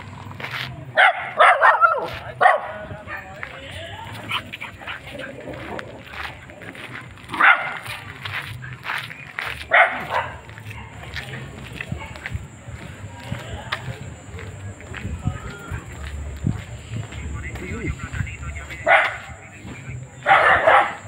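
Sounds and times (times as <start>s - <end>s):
dog barking: 1.0s - 2.8s, 7.3s - 7.9s, 9.7s - 11.1s, 18.8s - 19.4s, 20.2s - 21.0s.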